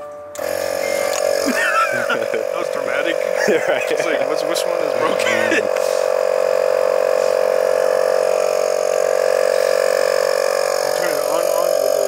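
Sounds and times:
tire inflator motor humming: 0.0s - 12.0s.

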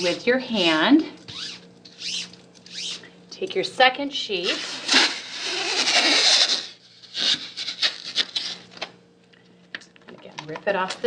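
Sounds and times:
tape peeling with loud rasp: 1.3s - 3.1s, 4.4s - 8.9s.

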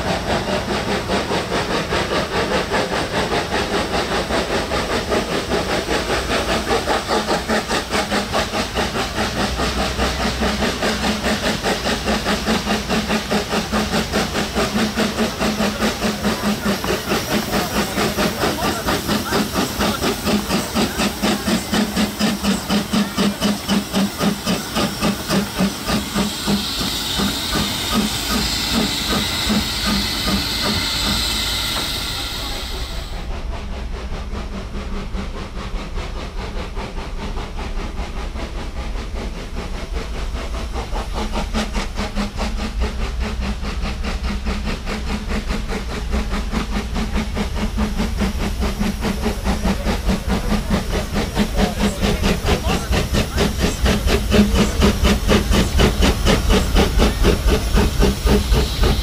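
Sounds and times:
steam hissing: 0.0s - 59.0s
steam locomotive chuffing: 0.0s - 59.0s.

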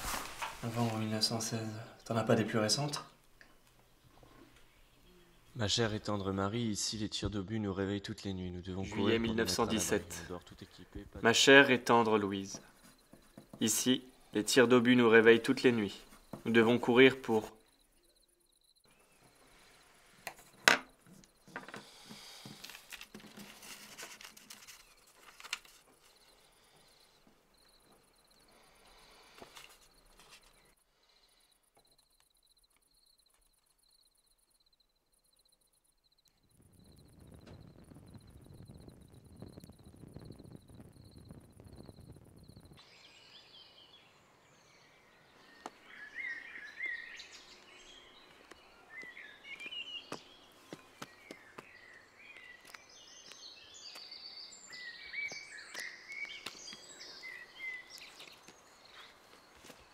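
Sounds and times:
crickets chirping: 8.6s - 59.9s
pen and paper handled on table: 20.3s - 26.2s, 29.4s - 30.6s
bird calls: 42.8s - 59.9s.

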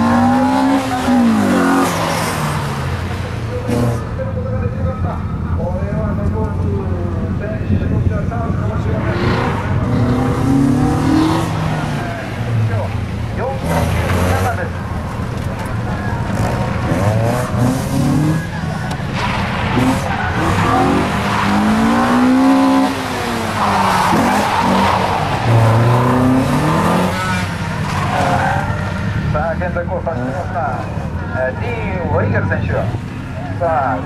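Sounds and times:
car engine revving: 0.0s - 34.0s
tyres squealing: 9.0s - 29.4s.

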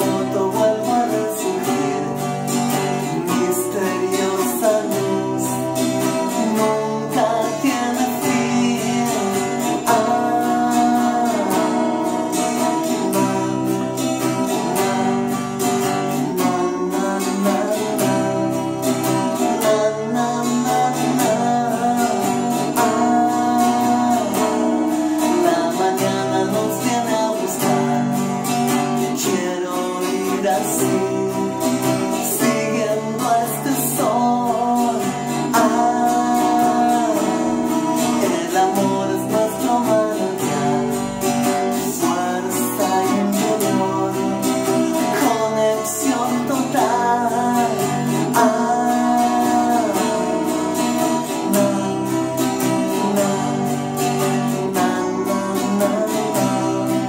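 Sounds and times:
twelve-string guitar strumming: 0.0s - 57.0s.

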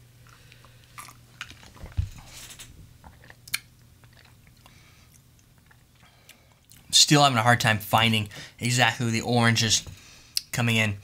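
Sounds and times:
person sipping and swallowing: 3.0s - 6.8s.

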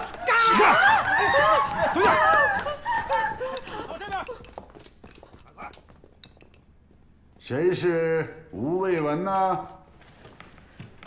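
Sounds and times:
porcelain spoon clinking bowl: 6.2s - 6.7s.

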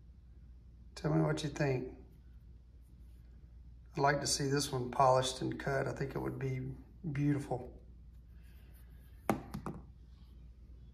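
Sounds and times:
steady low hum: 0.0s - 10.9s
sharp knocks of hard objects: 9.3s - 9.9s.

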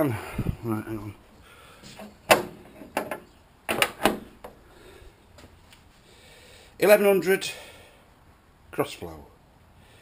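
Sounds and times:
car bonnet metallic clunks: 1.9s - 4.5s.

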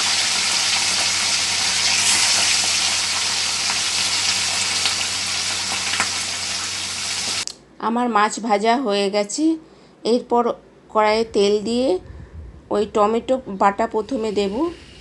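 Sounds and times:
fish sizzling in hot oil: 0.0s - 7.4s.

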